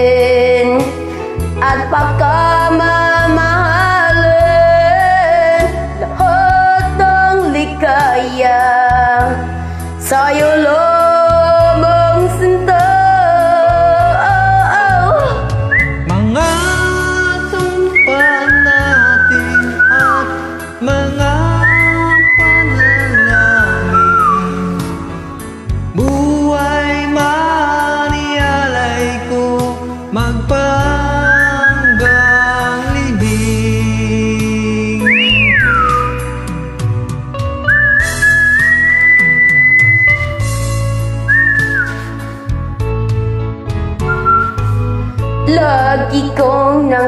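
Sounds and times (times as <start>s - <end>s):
karaoke backing music: 0.0s - 47.0s
whistled melody: 15.4s - 25.2s, 30.8s - 33.6s, 34.9s - 42.6s, 44.0s - 45.3s.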